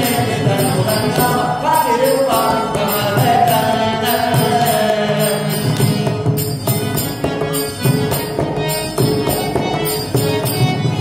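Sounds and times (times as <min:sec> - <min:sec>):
man singing: 0:00.0 - 0:06.4
harmonium chords: 0:00.0 - 0:11.0.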